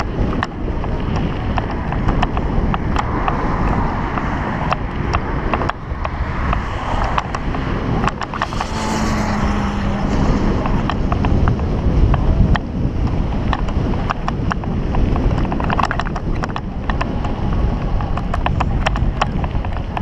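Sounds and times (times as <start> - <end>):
bike clicks and rattles: 0.0 - 9.3, 10.0 - 20.0
wind on microphone: 0.0 - 20.0.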